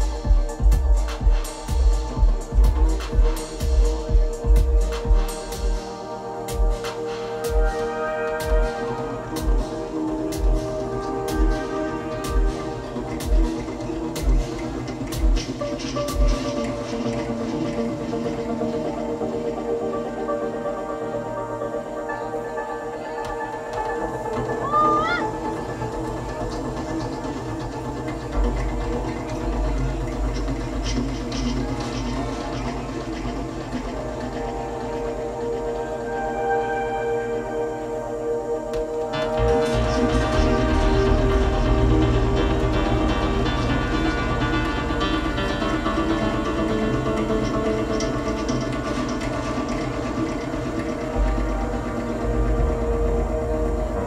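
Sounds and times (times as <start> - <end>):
synthesizer drones: 0.0 - 54.0.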